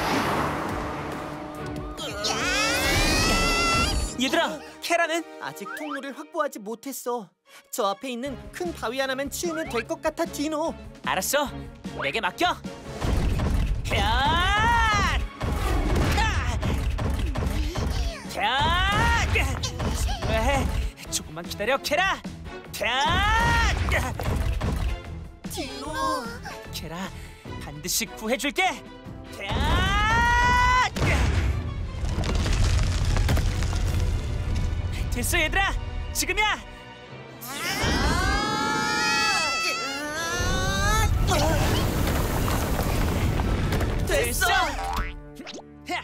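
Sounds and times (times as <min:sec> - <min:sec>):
cartoon characters straining cry: 0:02.0 - 0:04.2, 0:37.4 - 0:41.4
crashing rock knocks: 0:32.0 - 0:34.7, 0:41.8 - 0:44.1
boulder dragging rumble: 0:32.0 - 0:34.9, 0:41.2 - 0:44.1.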